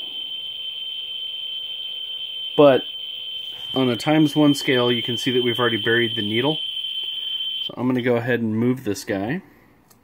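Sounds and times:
geiger counter high-pitched tone: 0.0 - 7.8.

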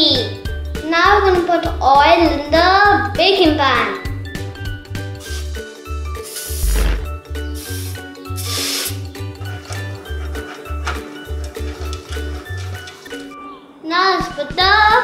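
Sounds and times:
upbeat background music: 0.0 - 15.0
aerosol spray can hissing: 5.1 - 9.8.

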